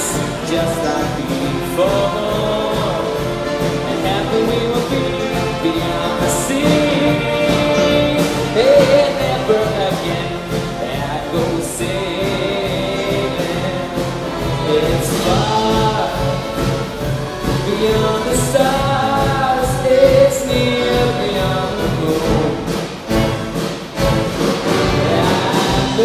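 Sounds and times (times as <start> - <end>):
choir singing with band: 0.0 - 26.0.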